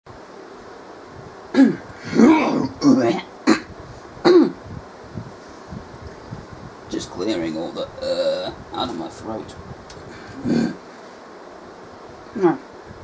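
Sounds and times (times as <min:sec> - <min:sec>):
steady background hiss: 0:00.1 - 0:13.0
man coughing and clearing throat: 0:01.6 - 0:01.8, 0:03.4 - 0:04.6.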